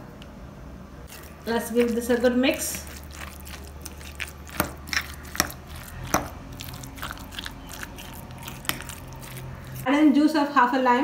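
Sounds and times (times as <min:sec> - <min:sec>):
fork mashing in glass bowl: 0:01.1 - 0:09.9.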